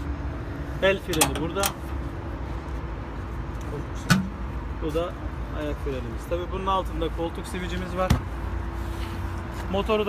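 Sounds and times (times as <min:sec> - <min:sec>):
diesel engine rumbling: 0:00.0 - 0:10.0.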